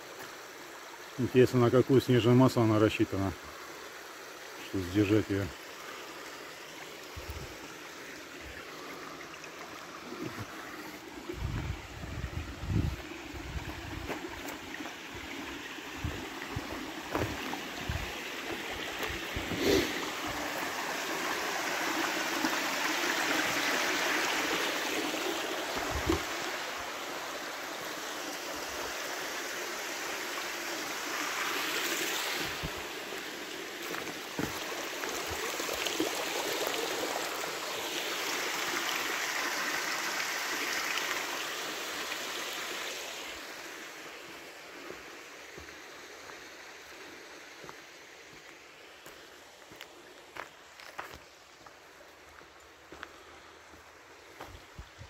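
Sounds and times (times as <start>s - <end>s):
stream water running: 0.0s - 55.0s.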